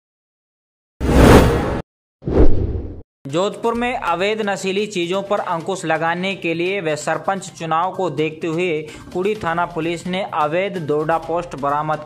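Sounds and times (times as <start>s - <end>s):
whoosh sound effects: 1.0s - 3.0s.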